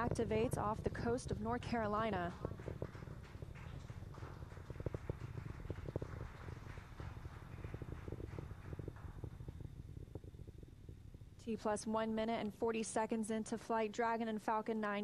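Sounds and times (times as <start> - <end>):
distant rocket engine rumble: 0.0 - 12.3.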